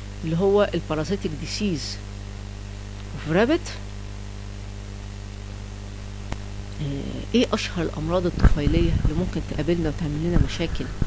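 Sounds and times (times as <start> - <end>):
electrical mains hum: 0.0 - 11.0
recording hiss: 4.6 - 11.0.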